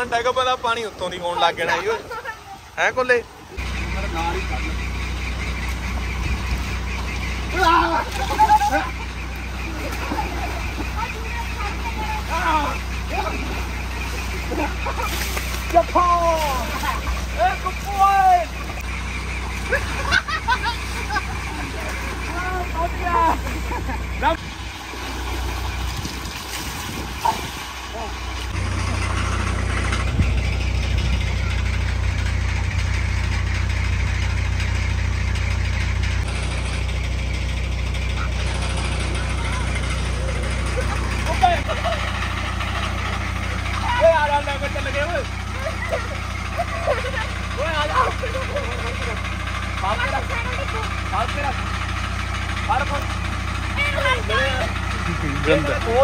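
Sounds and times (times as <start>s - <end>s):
low engine hum: 0.0s - 56.0s.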